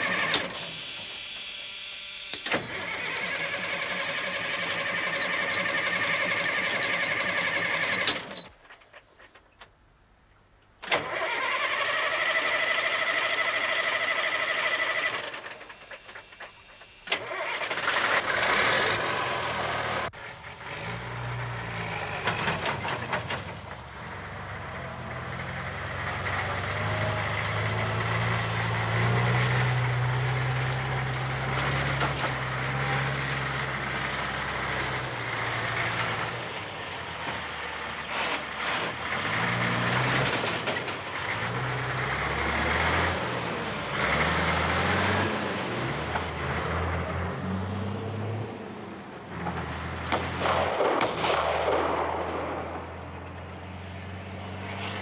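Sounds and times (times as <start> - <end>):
starter motor whine: 0.0 - 8.4
truck engine running: 0.0 - 8.9, 11.1 - 55.0.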